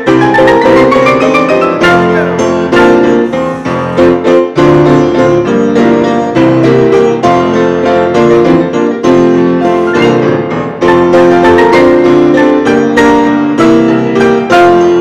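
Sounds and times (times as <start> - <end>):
pianos playing: 0.0 - 15.0.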